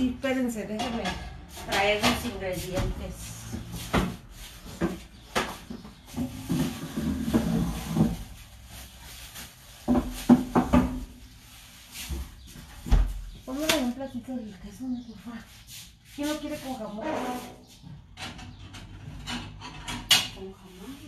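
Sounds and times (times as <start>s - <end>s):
doors and containers handled: 0.0s - 14.4s, 16.2s - 20.6s
kitchen knocks and clatter: 0.6s - 3.2s, 3.9s - 8.4s, 9.8s - 11.2s, 18.0s - 20.4s.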